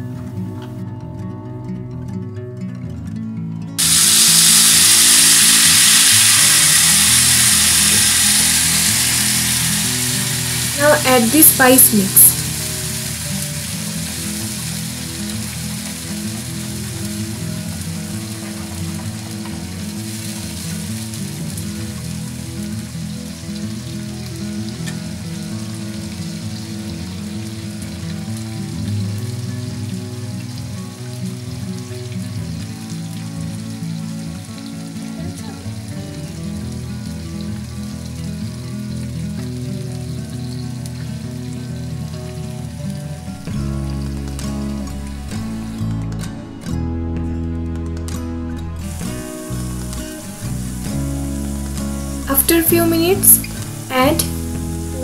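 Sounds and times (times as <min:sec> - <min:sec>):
soft instrumental music: 0:00.0 - 0:55.0
sauce sizzling in a pan: 0:03.8 - 0:46.0, 0:48.8 - 0:55.0.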